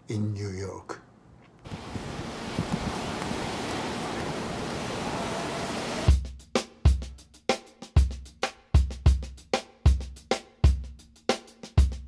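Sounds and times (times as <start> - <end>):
wind: 0.0 - 6.1
ocean surf: 1.7 - 6.1.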